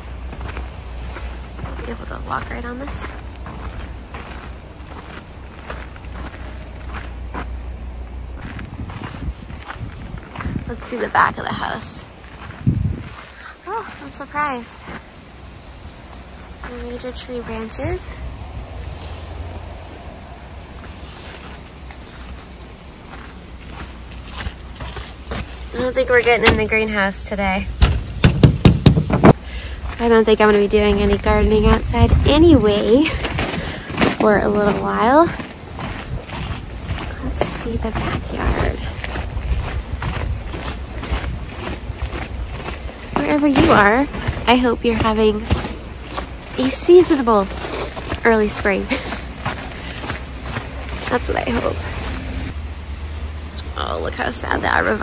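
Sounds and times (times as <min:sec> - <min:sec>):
wind buffeting microphone: 0:00.0 - 0:52.6
boot crunching on icy snow: 0:20.8 - 0:27.0, 0:32.9 - 0:52.5
sharp knocks on latch: 0:27.8 - 0:29.3.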